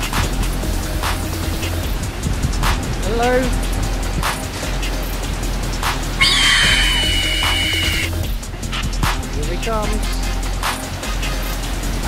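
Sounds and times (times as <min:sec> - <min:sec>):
background music with soft beat: 0:00.0 - 0:12.0
shrill creature screech: 0:06.2 - 0:08.1.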